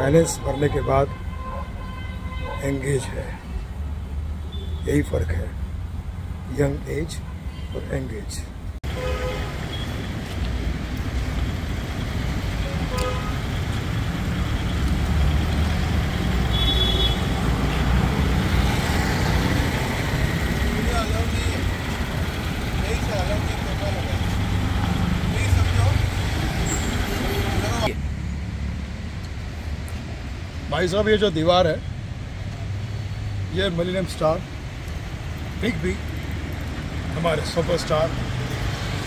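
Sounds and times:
street traffic rumble: 0.0s - 39.0s
vehicle horn toot: 0.2s - 2.7s, 8.9s - 10.0s, 12.6s - 13.4s, 16.5s - 17.4s.

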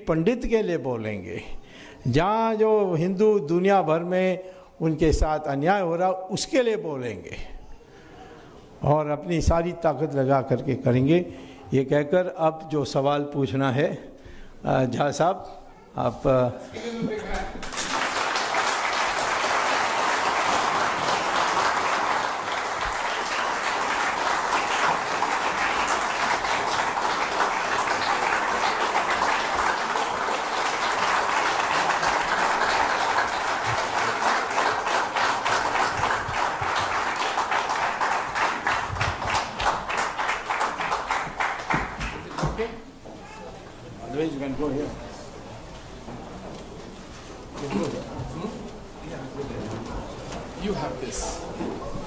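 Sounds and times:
audience applauding: 17.5s - 42.7s.

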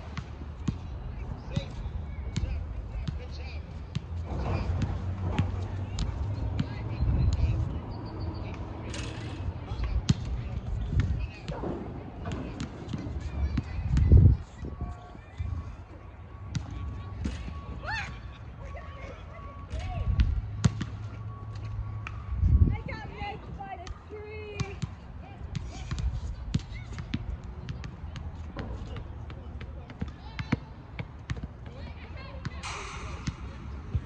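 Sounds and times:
ball kicked and bouncing on grass: 32.4s - 34.0s.

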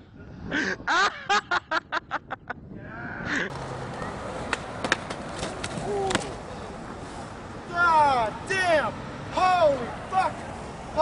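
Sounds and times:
skateboard wheels rolling on concrete: 3.4s - 11.0s
skateboard clacking in a fall: 3.5s - 6.4s.

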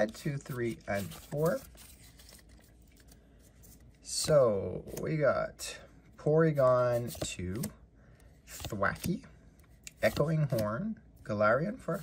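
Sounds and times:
faint rustling of cards: 0.0s - 12.0s.

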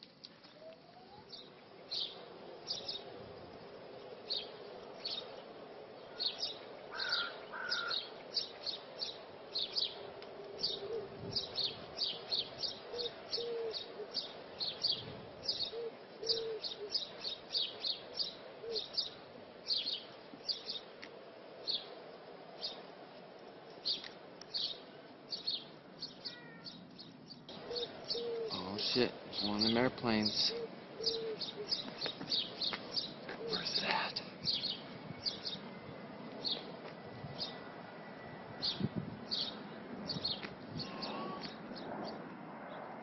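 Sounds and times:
small birds chirping: 0.1s - 37.7s, 38.5s - 42.8s.

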